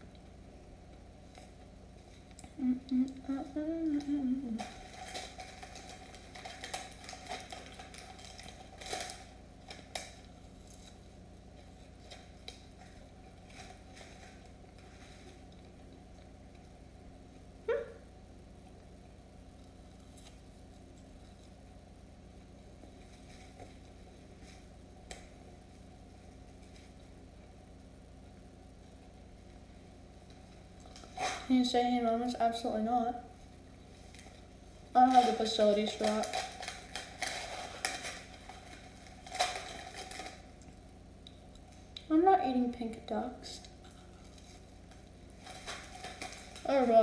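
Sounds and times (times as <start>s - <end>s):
low room hum: 0.0s - 47.0s.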